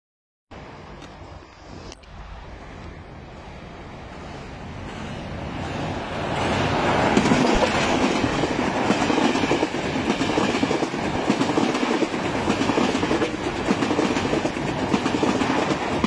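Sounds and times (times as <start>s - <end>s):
train wheels rumbling on rails: 0.6s - 16.0s.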